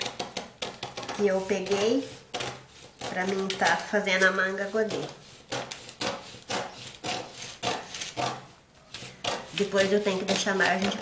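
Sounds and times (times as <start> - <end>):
scissors cutting paper: 0.0 - 11.0.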